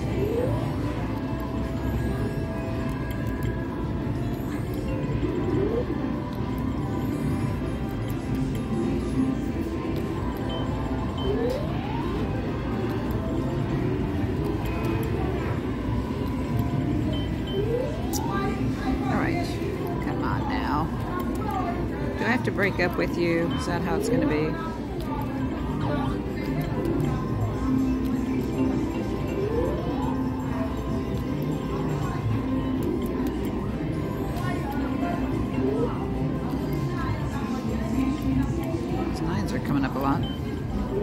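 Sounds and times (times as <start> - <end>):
gaming machine electronic music: 0.0 - 37.8.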